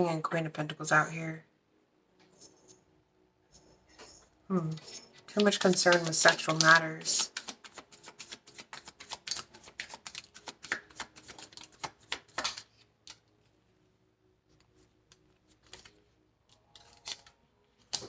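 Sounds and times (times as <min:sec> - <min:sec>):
cards being shuffled: 0:04.6 - 0:13.2, 0:14.6 - 0:18.0.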